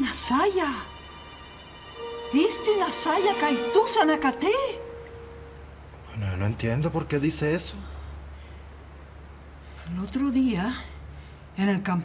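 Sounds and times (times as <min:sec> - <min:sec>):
held note of background music: 0:00.0 - 0:06.0.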